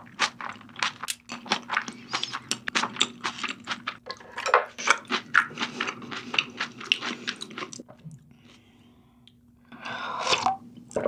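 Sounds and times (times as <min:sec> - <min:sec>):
wet chewing clicks and smacks: 0:00.2 - 0:04.2.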